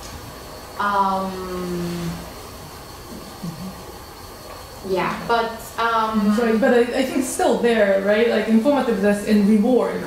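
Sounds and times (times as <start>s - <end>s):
high-pitched whine: 0.0s - 10.0s
room hiss: 0.0s - 10.0s.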